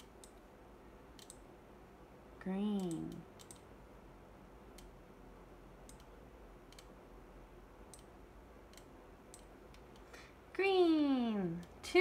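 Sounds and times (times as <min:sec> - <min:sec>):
computer mouse clicks: 0:00.0 - 0:00.5, 0:01.2 - 0:01.4, 0:02.8 - 0:03.7, 0:04.7 - 0:05.0, 0:05.8 - 0:07.0, 0:07.9 - 0:08.1, 0:08.7 - 0:10.1.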